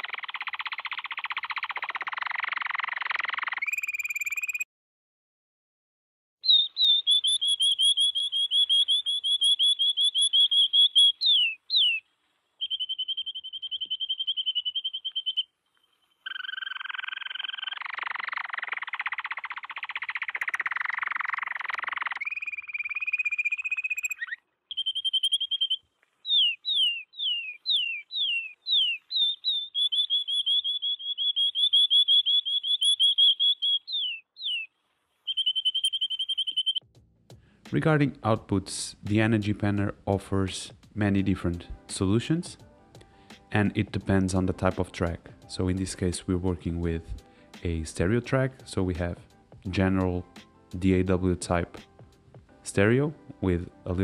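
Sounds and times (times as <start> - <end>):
canary singing trills: 0.0 - 4.7, 6.4 - 36.8.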